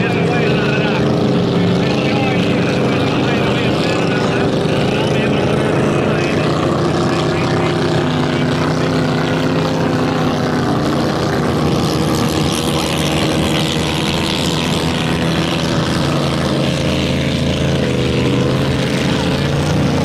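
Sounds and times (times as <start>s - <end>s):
boat engine droning: 0.0s - 20.0s.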